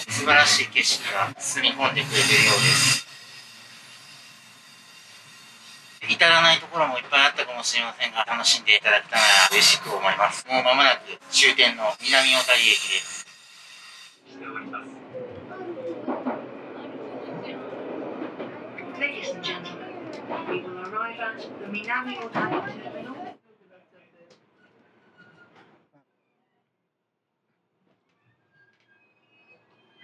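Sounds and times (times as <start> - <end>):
train cabin running noise: 0.0 - 13.2.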